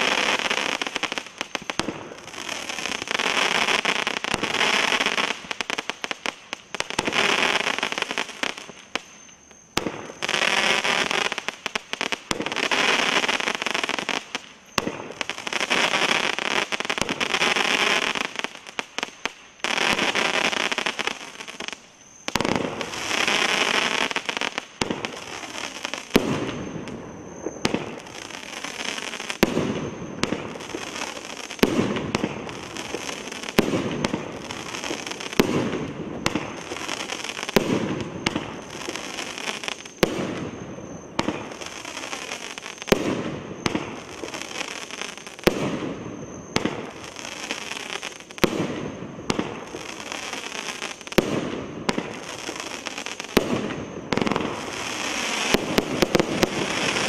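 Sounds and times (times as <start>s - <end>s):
dense fireworks crackling: 0.0s - 57.0s
fireworks shells launching and bursting: 0.0s - 57.0s.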